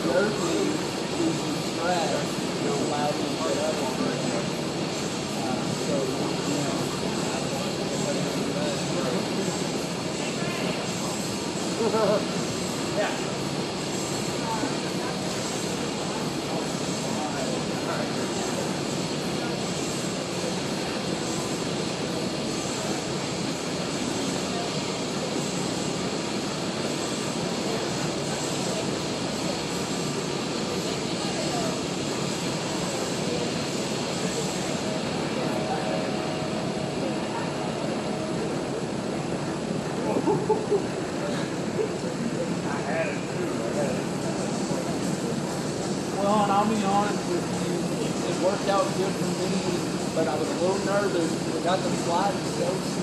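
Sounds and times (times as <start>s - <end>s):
faint voices: 0.0s - 53.0s.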